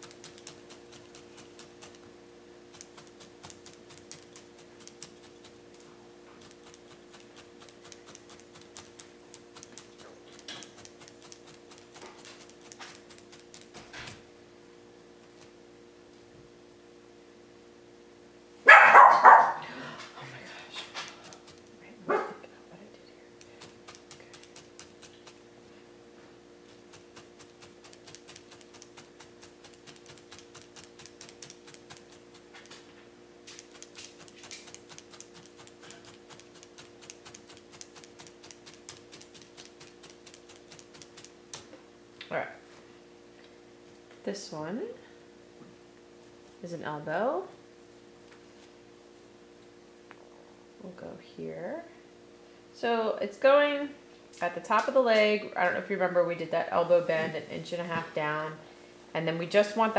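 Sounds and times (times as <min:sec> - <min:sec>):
dog barking: 0:18.7 - 0:19.6, 0:22.1 - 0:22.4.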